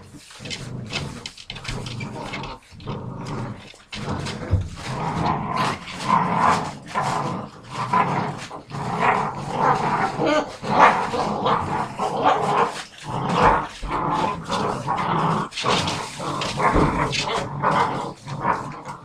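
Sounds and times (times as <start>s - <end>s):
puppies growling: 0.0s - 19.0s.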